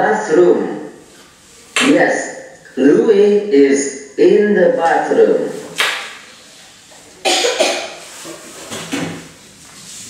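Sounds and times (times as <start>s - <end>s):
person coughing: 7.2s - 8.0s.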